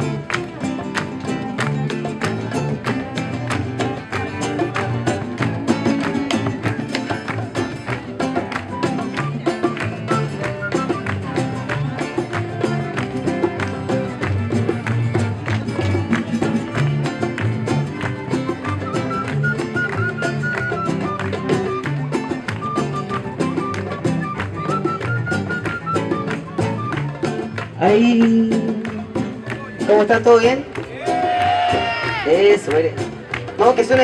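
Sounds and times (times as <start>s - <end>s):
cello: 0.0s - 28.0s
double bass: 0.0s - 34.0s
hand drum beat: 0.0s - 34.0s
strummed acoustic guitars: 0.0s - 34.0s.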